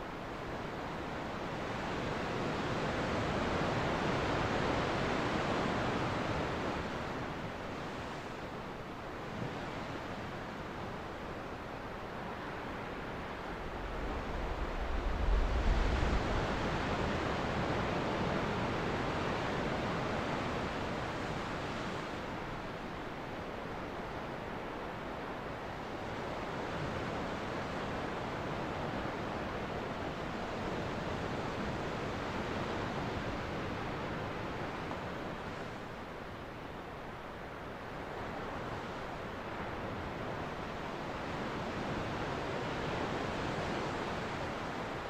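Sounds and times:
ocean waves breaking on beach: 0.1 - 45.0.

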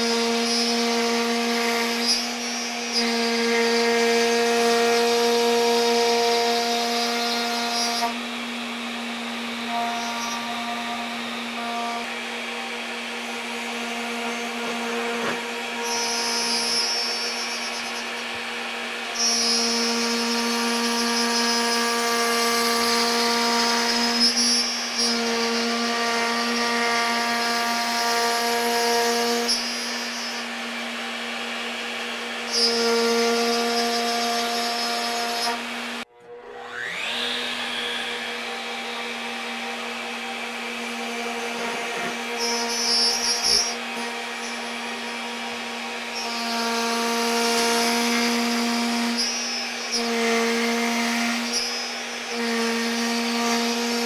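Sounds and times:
router bit cutting wood: 0.0 - 54.0
router table running: 0.0 - 54.0.

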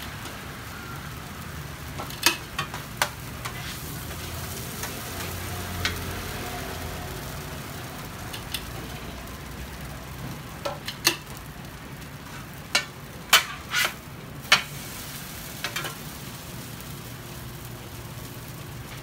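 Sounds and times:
food sizzling on a griddle: 0.0 - 19.0
metal utensils scraping griddle: 2.0 - 6.0, 12.2 - 14.8.

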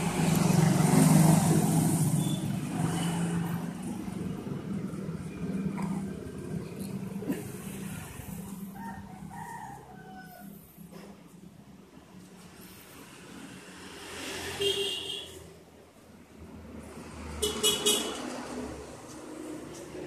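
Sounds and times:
vehicle engine hum: 0.0 - 20.0
rooster crowing: 8.6 - 10.9.

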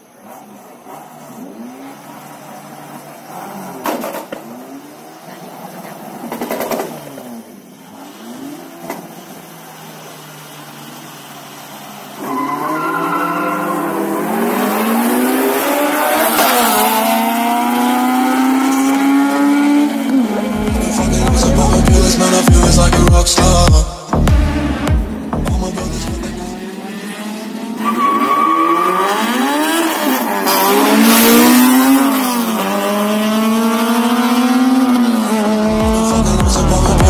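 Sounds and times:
car accelerating hard: 0.0 - 37.0
car engines revving: 0.0 - 37.0.

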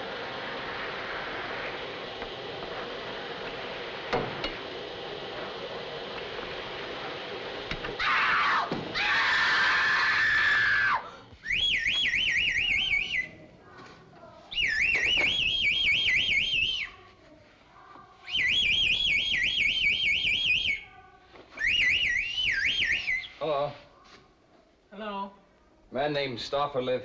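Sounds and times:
hiss with falling tone: 0.0 - 11.2
high warbling whistle: 8.0 - 13.5, 14.5 - 17.0, 18.2 - 20.9, 21.5 - 23.5.

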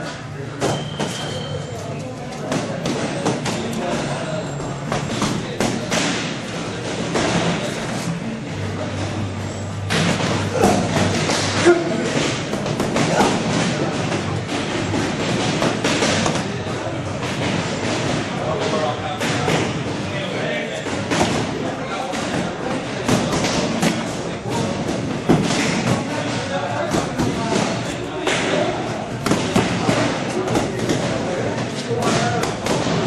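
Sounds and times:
busy gym din: 0.0 - 33.0
boxing gloves punching: 9.9 - 18.3, 26.8 - 33.0.

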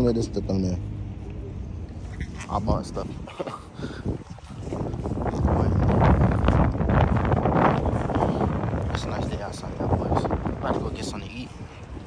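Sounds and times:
wind buffeting microphone: 1.1 - 12.0
short laugh: 3.2 - 4.0.

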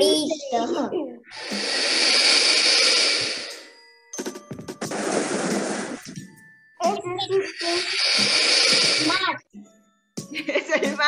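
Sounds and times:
loud breathy animal hiss: 1.3 - 3.7, 7.6 - 9.2.

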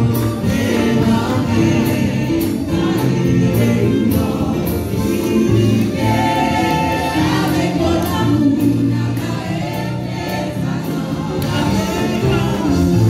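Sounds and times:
group singing gospel with band: 0.0 - 13.0.

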